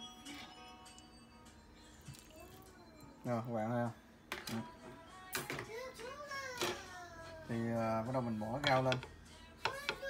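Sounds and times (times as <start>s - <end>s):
young child's high voice: 5.6s - 7.5s, 9.6s - 10.0s.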